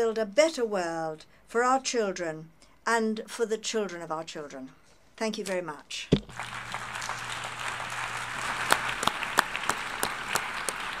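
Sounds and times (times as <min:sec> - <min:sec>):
audience applauding: 0:06.3 - 0:11.0.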